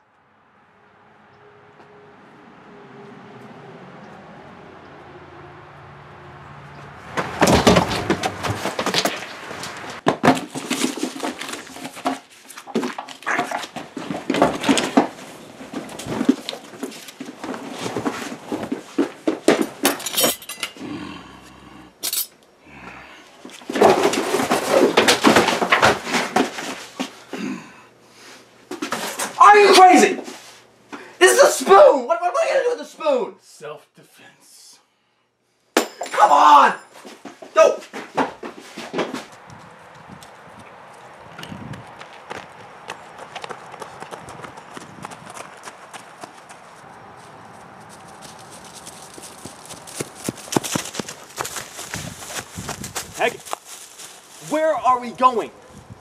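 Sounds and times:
hard objects clattering: 7.2s - 20.9s, 23.5s - 27.1s.

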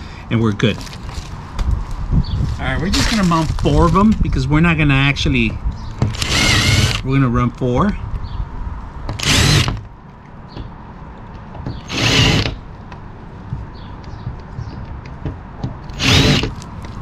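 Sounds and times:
cordless drill boring into wood: 6.1s - 7.1s, 9.2s - 9.8s, 11.8s - 12.6s, 15.9s - 16.6s.

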